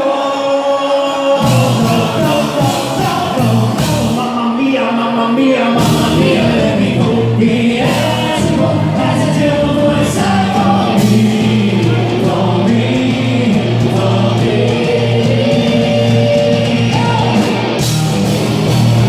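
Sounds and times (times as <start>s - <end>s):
man singing: 0.0s - 17.6s
drums: 0.0s - 19.0s
live band playing: 1.2s - 19.0s
bass guitar: 1.4s - 4.4s, 5.6s - 19.0s.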